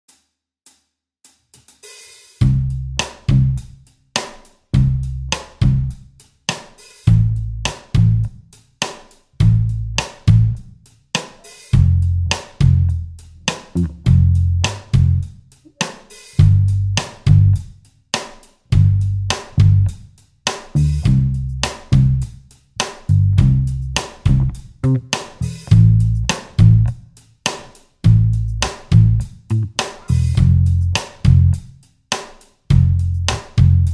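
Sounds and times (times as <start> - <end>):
pop backing track drums and bass: 1.9 - 33.9.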